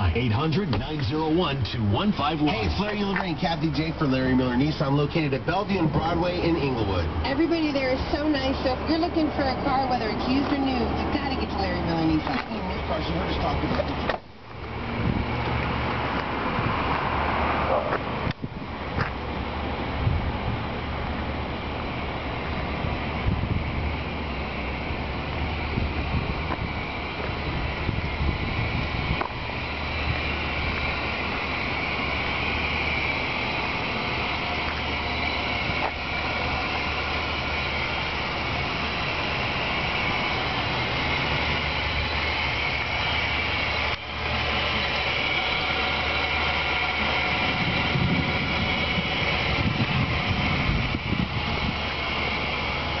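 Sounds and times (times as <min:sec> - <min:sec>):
car engine idling: 0:00.0 - 0:53.0.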